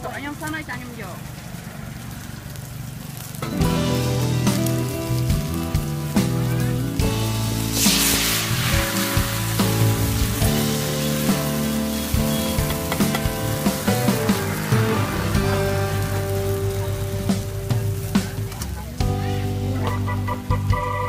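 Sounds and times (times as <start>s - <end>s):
batter sizzling in woks: 0.0s - 21.0s
background music: 3.4s - 21.0s.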